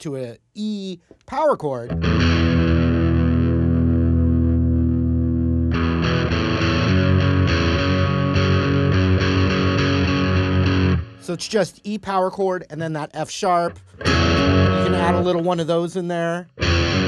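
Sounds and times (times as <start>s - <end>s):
distorted electric guitar chords: 1.9s - 11.6s, 13.7s - 15.9s, 16.5s - 17.0s.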